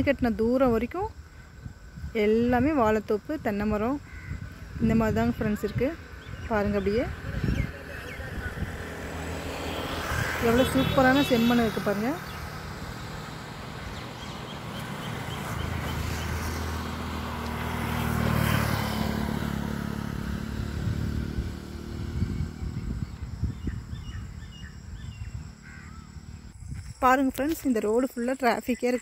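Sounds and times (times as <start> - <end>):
vehicle engine passing by: 4.6 - 26.6.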